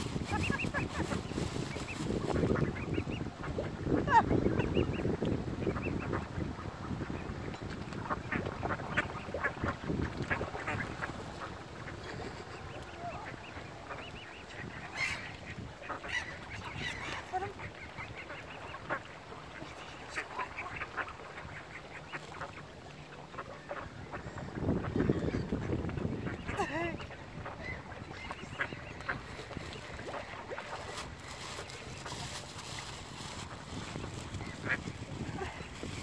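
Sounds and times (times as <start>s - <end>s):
ducks quacking: 0.2s - 5.0s, 8.0s - 30.7s, 33.8s - 35.8s
waterbird calls: 0.2s - 7.3s, 8.0s - 32.5s.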